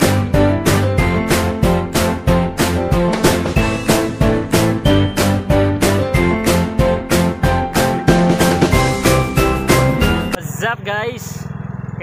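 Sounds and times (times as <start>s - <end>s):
background music: 0.0s - 10.4s
motorcycle engine running: 7.8s - 12.0s.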